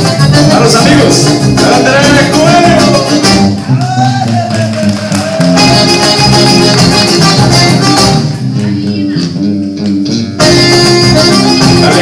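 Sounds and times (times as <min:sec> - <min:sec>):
accordion: 0:00.0 - 0:03.8, 0:05.4 - 0:12.0
live band playing: 0:00.0 - 0:12.0
plucked guitars and bass: 0:00.0 - 0:12.0.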